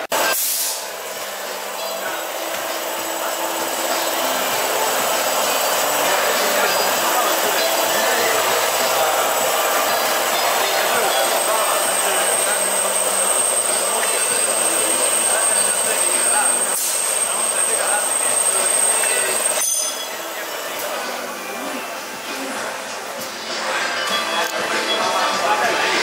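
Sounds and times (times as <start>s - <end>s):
machinery running: 0.0s - 22.7s
crowd chatter: 0.0s - 26.0s
thin high whine: 1.1s - 21.9s.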